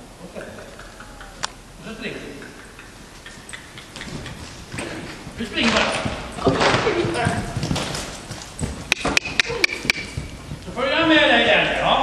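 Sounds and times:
tongue clicks: 0.6 - 1.6, 2.4 - 4.4.

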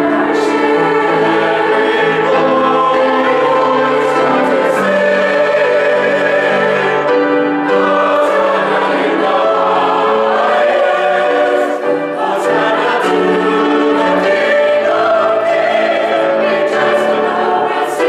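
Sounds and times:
church choir singing: 0.0 - 18.0.

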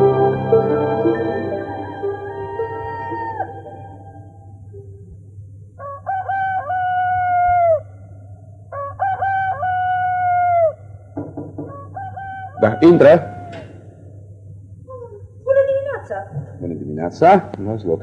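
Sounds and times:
rooster crowing: 0.0 - 4.3, 5.8 - 8.0, 8.7 - 10.8, 11.6 - 13.8
sustained music chord: 0.0 - 5.0.

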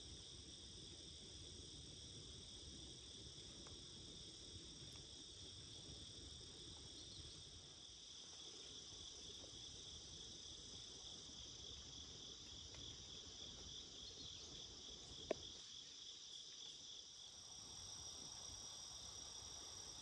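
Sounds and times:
crickets chirping: 0.0 - 20.0.

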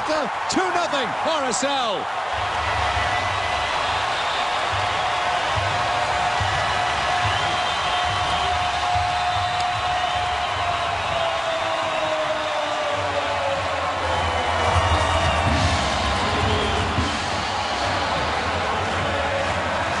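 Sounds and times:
stadium crowd cheering: 0.0 - 20.0.

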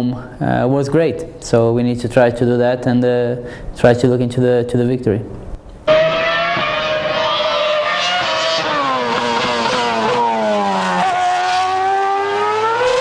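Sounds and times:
racing car engine at high revs: 5.9 - 13.0.

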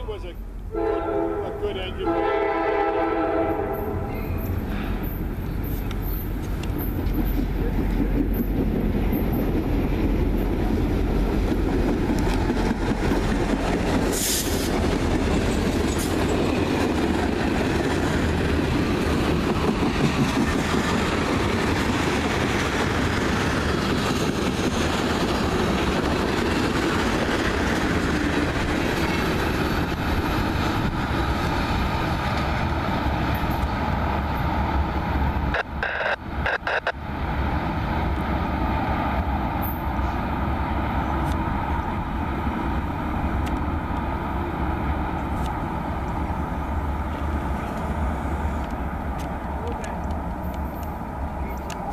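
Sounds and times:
freight train rumbling on rails: 0.0 - 51.9.

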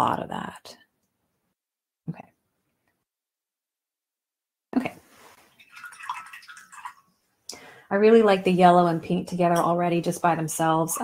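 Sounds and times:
brush rinsed in water jar: 5.1 - 7.2.

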